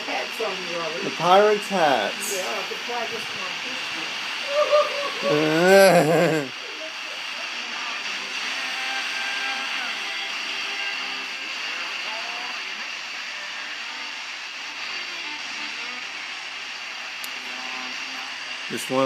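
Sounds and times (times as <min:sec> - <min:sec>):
faint radio music: 0:00.0 - 0:19.0
radio static hiss: 0:00.0 - 0:19.0.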